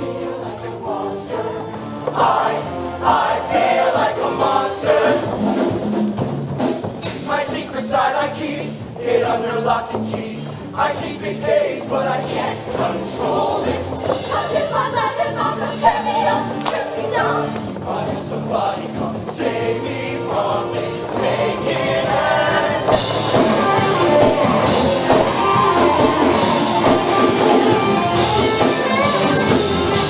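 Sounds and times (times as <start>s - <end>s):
choir singing: 0.0s - 5.6s, 7.2s - 30.0s
instrumental backing with bass: 8.4s - 30.0s.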